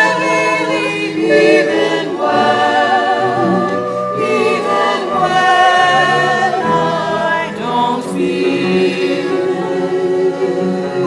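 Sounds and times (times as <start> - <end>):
choir singing: 0.0 - 11.0
piano accompaniment: 0.0 - 11.0.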